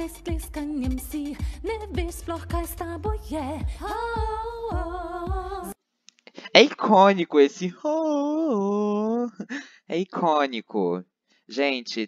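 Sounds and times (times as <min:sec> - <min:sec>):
pop backing beat: 0:00.0 - 0:05.8
women singing a long note: 0:00.0 - 0:05.8.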